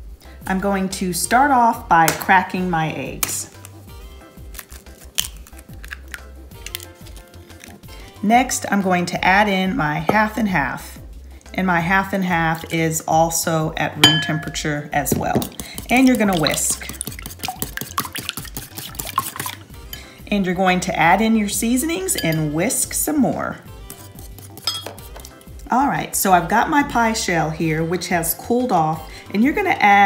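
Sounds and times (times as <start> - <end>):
background music: 0.0 - 30.0
eggshells cracking: 3.2 - 8.1, 15.4 - 19.7
whisk beating eggs in a bowl: 15.4 - 19.7, 23.8 - 25.5.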